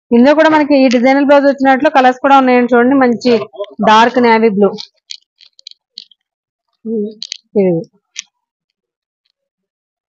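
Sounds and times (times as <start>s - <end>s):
person speaking syllables: 3.2s - 5.6s, 6.9s - 7.9s.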